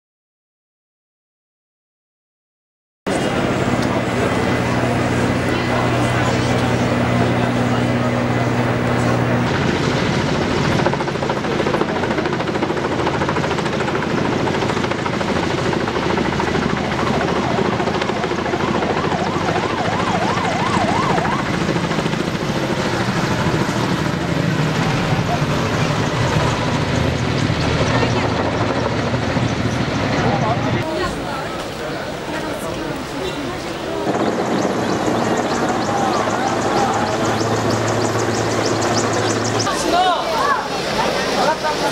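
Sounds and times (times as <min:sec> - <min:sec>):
crowd voices: 0:03.1 - 0:13.8, 0:14.8 - 0:41.9
helicopter rotor and engine: 0:03.1 - 0:41.9.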